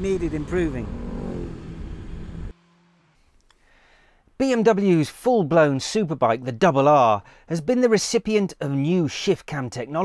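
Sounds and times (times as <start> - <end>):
motorcycle engine riding off: 0.0 - 3.2.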